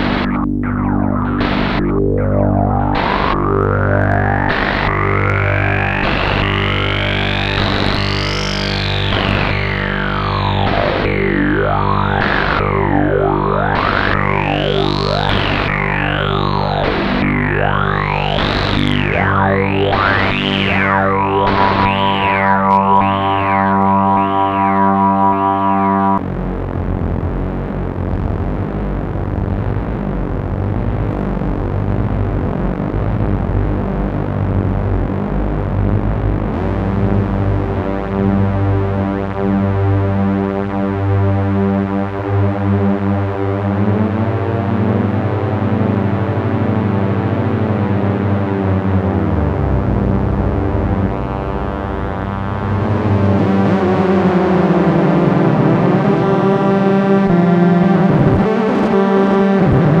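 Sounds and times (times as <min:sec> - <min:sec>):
rough noisy low synth sound: 0:00.0 - 1:00.0
synthesiser drone with resonant sweeps: 0:00.0 - 1:00.0.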